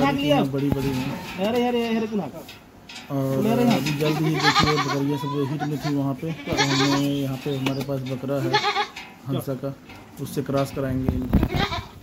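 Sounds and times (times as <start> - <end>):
goat bleating: 3.5 - 7.4, 8.4 - 9.1, 11.4 - 12.0.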